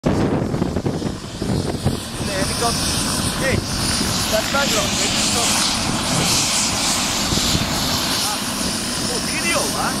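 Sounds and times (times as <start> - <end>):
helicopter rotor and engine: 0.0 - 10.0.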